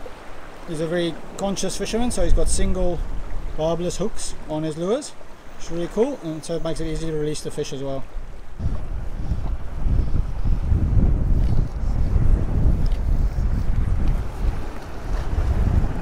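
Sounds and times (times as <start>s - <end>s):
wind buffeting microphone: 2.0s - 4.2s, 8.0s - 16.0s.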